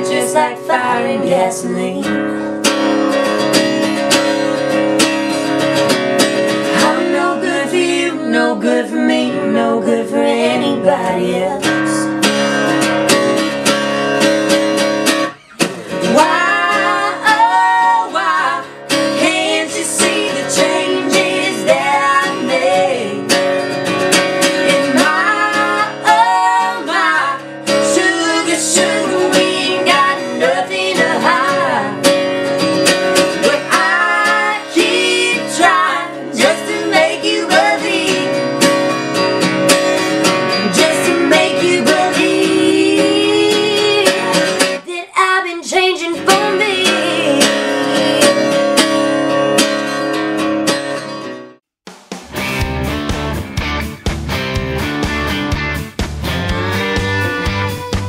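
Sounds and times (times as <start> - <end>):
woman singing: 0.0 - 2.5, 6.6 - 12.3, 15.9 - 23.5, 24.6 - 38.8, 40.5 - 48.9
acoustic guitar strumming: 0.0 - 44.9, 46.2 - 58.0.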